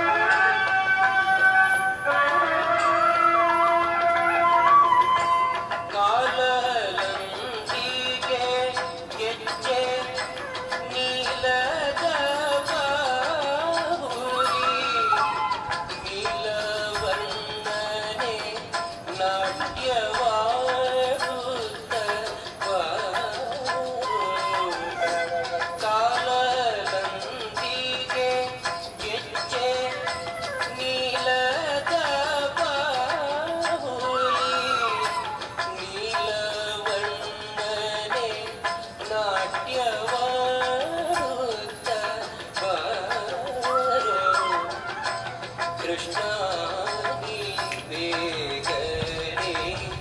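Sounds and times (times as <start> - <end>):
devotional song melody: 0.0 - 50.0
musical accompaniment: 0.0 - 50.0.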